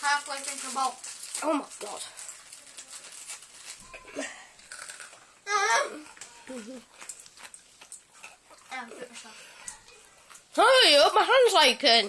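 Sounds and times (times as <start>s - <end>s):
person chewing and licking fingers: 6.0s - 10.5s.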